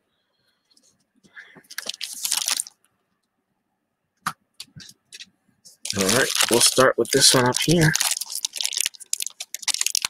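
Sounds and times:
wrapper crinkling: 1.7 - 2.8, 5.8 - 10.0.

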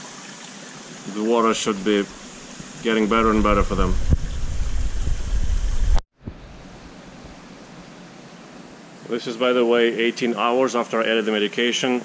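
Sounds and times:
water rushing into aquarium: 0.0 - 6.0
steady background hiss: 0.0 - 12.0
deep rumble: 2.9 - 7.0.

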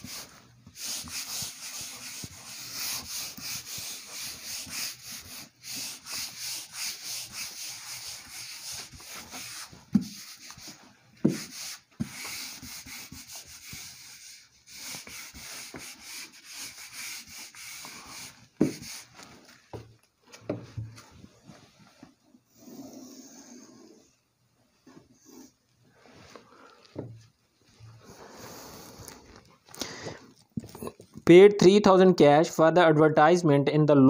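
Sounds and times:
duster scrubbing a whiteboard: 0.0 - 19.9.

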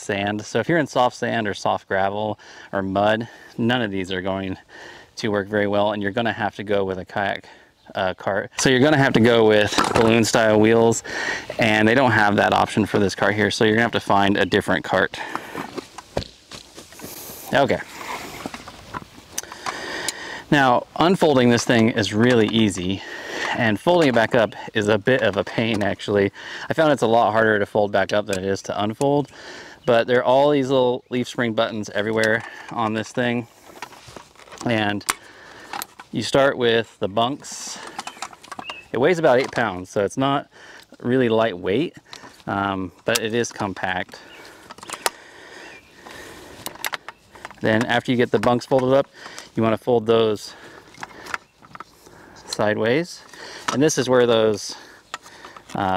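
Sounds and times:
handling rustle: 8.6 - 26.2, 31.6 - 40.1, 42.0 - 55.9
sharp clicks of frame joints: 8.6 - 27.0, 31.5 - 40.0, 41.9 - 55.9
faint bird chirps: 38.0 - 39.0.

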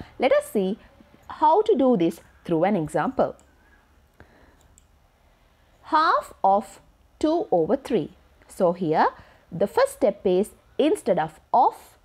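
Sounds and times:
woman speaking: 0.0 - 3.4, 5.8 - 12.0
faint room hiss: 0.0 - 12.0.

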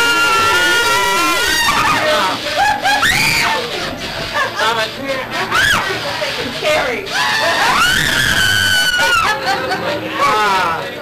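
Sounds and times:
people screaming: 0.0 - 3.7, 5.4 - 5.9, 7.1 - 9.5, 10.2 - 10.8.

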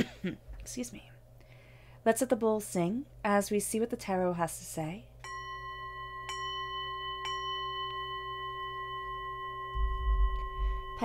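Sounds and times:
metal singing bowl ringing: 5.2 - 11.0
low thud: 9.8 - 11.0.

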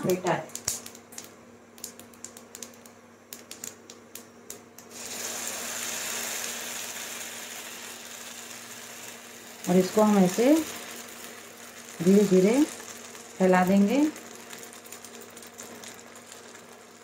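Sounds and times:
seeds crackling in hot oil: 0.0 - 17.0
batter sizzling in pan: 4.8 - 17.0.

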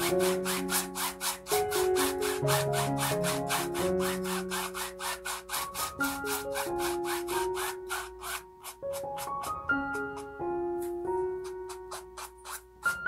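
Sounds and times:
paintbrush rubbing on canvas: 0.0 - 13.0
soft background music: 0.0 - 13.0.

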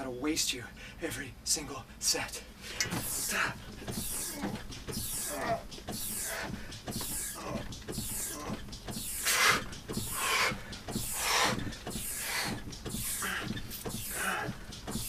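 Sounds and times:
heavy breathing: 0.7 - 1.1, 1.9 - 15.0
rowing machine knocks: 2.8 - 15.0.

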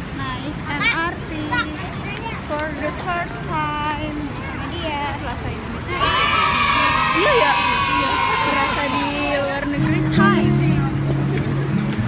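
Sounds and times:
children calling and playing: 0.0 - 12.0
city street noise: 0.0 - 12.0.

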